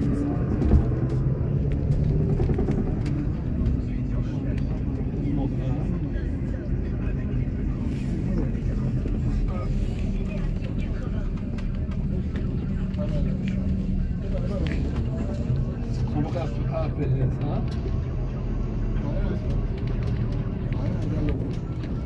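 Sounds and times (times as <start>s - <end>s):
bus engine rumble: 0.0s - 22.0s
road noise: 0.0s - 22.0s.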